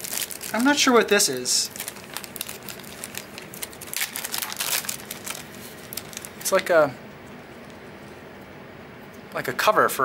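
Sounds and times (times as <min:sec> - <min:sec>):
plastic bag crinkling: 0:00.0 - 0:06.7.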